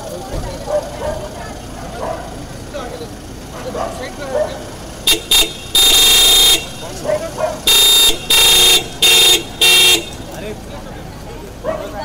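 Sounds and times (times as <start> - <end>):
car horn honking: 5.0 - 10.6.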